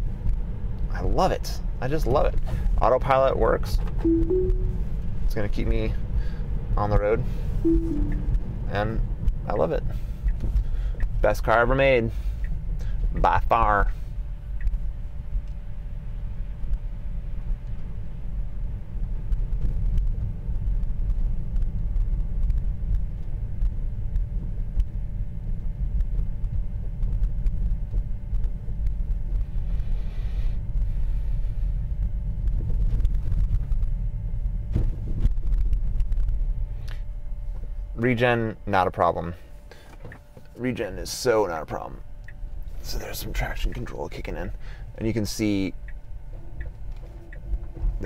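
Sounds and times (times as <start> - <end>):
tyre and road noise in car cabin: 0.0 - 4.0, 8.2 - 48.0
faint steady tone: 4.1 - 5.0, 7.6 - 8.4.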